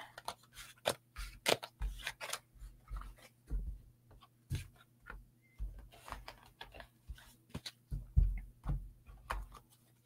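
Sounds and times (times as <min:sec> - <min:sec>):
cards sliding and snapping: 0:00.1 - 0:02.5.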